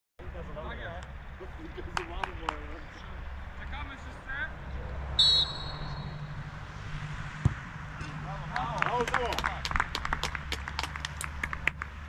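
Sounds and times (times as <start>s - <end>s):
referee's whistle blast: 5.2s - 6.2s.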